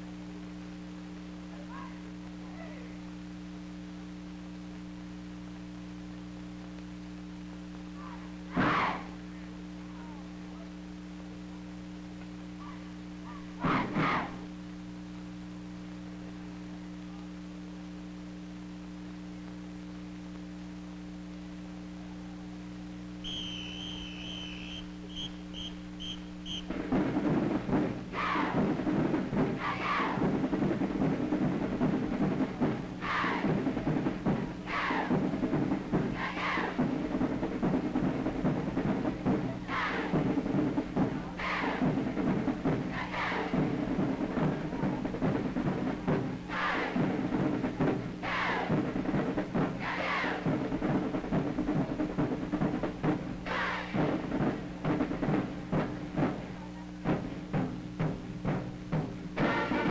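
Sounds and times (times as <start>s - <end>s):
low recording hum: 0.0s - 59.9s
marching band playing: 8.1s - 9.2s, 13.5s - 14.5s, 23.2s - 59.9s.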